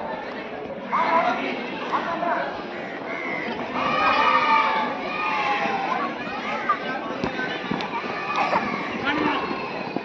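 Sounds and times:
children shouting and chattering: 0:00.0 - 0:10.0.

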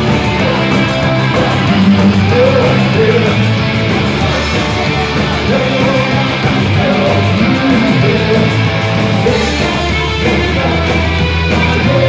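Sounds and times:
electric guitar: 0:00.0 - 0:12.0
live punk rock band: 0:00.0 - 0:12.0.

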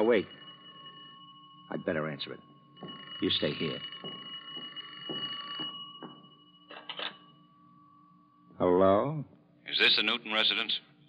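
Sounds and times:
telephone bell ringing: 0:00.0 - 0:08.4.

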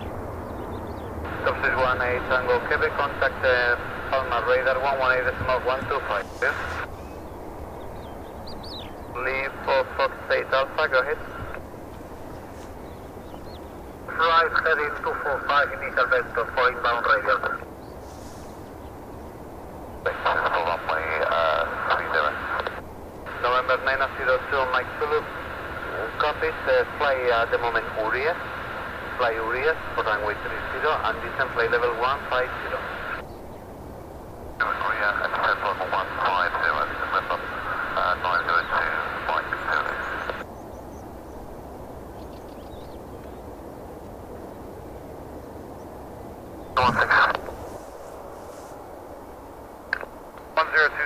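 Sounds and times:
low background rumble: 0:00.0 - 0:50.0
faint low background noise: 0:00.0 - 0:51.0
voice over narrow-band radio: 0:01.3 - 0:06.9, 0:09.1 - 0:11.6, 0:14.1 - 0:18.4, 0:20.0 - 0:33.2, 0:34.6 - 0:40.4, 0:46.8 - 0:48.7, 0:49.9 - 0:51.0.

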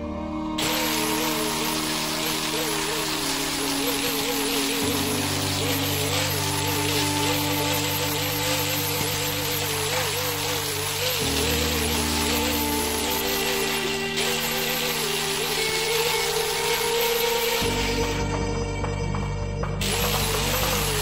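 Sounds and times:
background music with sustained chords: 0:00.0 - 0:21.0
angle grinder grinding steel: 0:00.6 - 0:21.0.

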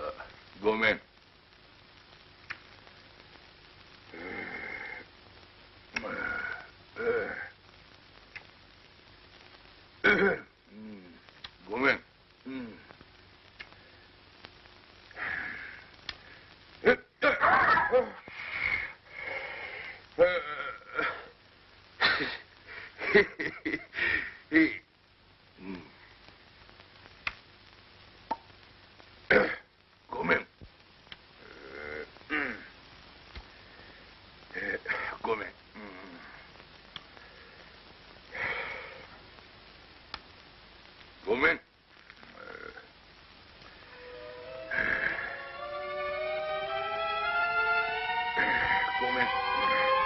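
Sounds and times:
soundtrack hiss: 0:00.0 - 0:50.0
man murmuring low: 0:12.4 - 0:12.9.

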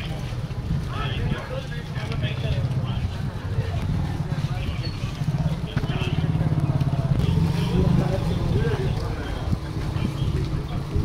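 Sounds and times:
men's voices murmuring: 0:00.0 - 0:11.0.

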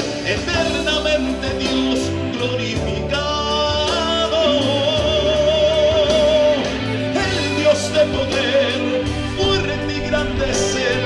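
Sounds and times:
amplified backing music: 0:00.0 - 0:11.0
man singing into a microphone: 0:00.0 - 0:11.0.

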